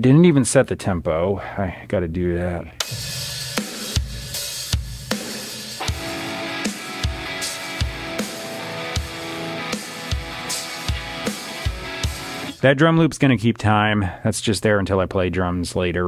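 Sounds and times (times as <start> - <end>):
drum loop rock beat: 2.7 - 13.0
electric guitar chords: 5.8 - 12.6.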